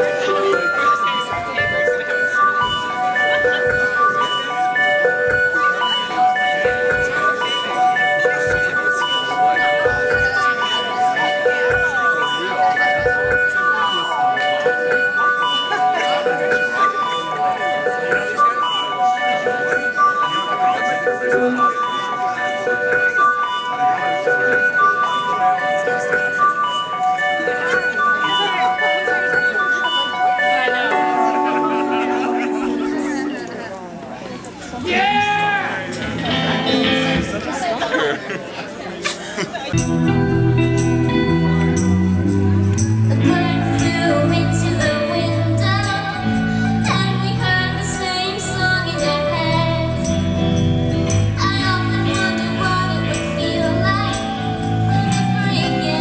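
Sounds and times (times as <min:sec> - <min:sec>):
live band melody: 0:00.0 - 0:38.0, 0:39.8 - 0:56.0.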